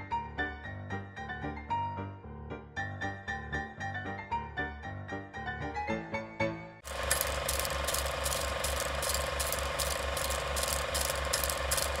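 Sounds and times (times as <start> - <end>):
film projector clatter: 6.8 - 12.0.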